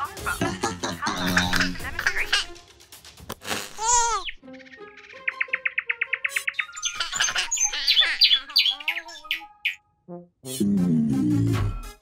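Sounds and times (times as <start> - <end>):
light background music: 0.0 - 12.0
cartoon bird chirping: 3.7 - 9.8.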